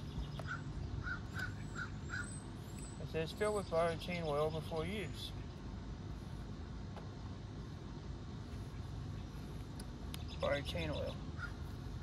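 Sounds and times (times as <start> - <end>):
bird calling: 0.0 - 5.5, 10.2 - 11.8
steady low hum: 0.0 - 12.0.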